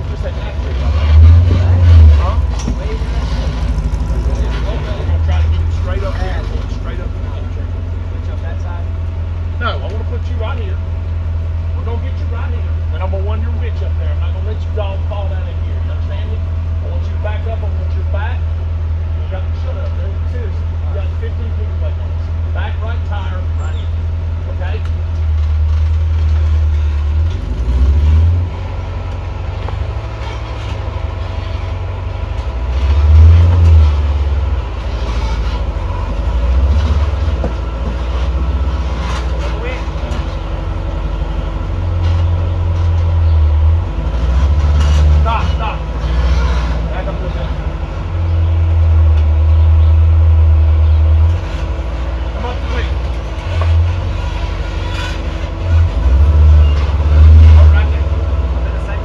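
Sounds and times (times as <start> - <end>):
engine revving: 0.0 - 8.8, 24.5 - 59.0
voices talking: 0.0 - 25.1, 28.5 - 59.0.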